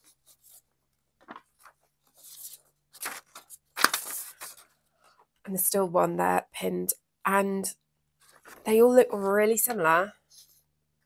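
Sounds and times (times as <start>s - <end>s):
paper rustling: 0.0s - 5.2s, 8.2s - 9.4s.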